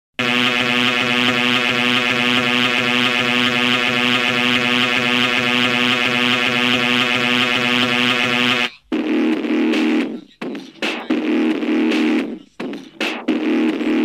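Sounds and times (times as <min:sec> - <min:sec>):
low buzzing drone: 0:00.2 - 0:08.7.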